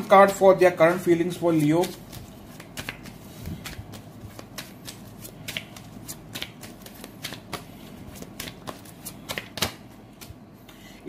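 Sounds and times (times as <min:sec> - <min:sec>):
cards being shuffled: 0:00.0 - 0:10.4.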